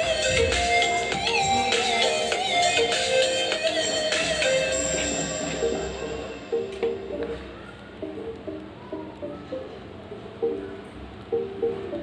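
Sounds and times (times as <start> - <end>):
instrumental music with held notes: 0.0 - 12.0.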